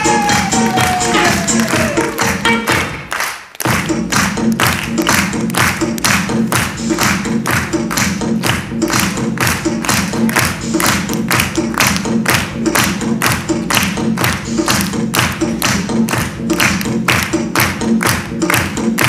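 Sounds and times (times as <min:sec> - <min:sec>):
music with fast steady beat: 0:00.0 - 0:19.0.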